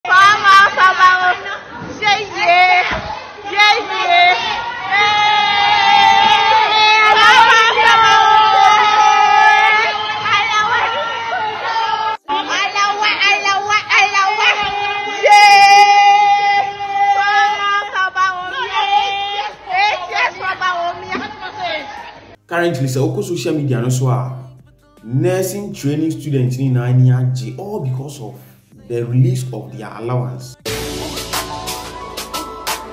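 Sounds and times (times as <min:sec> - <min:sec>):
wavering shouts: 0:00.1 - 0:22.3
young women singing together: 0:00.1 - 0:22.4
people chattering: 0:00.1 - 0:22.7.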